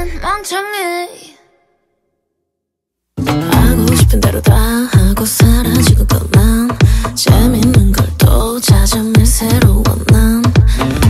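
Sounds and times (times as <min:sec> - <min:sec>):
woman singing: 0:00.0 - 0:01.6, 0:03.2 - 0:11.0.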